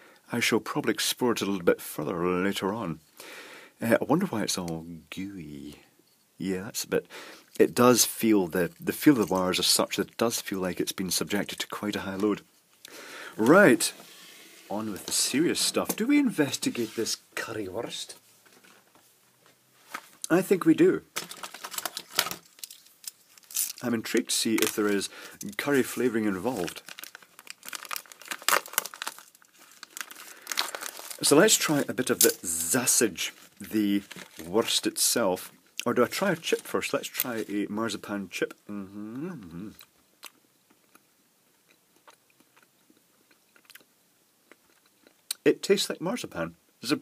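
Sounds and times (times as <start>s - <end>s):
plastic wrapping crinkling: 18.4s - 35.1s, 36.0s - 37.7s.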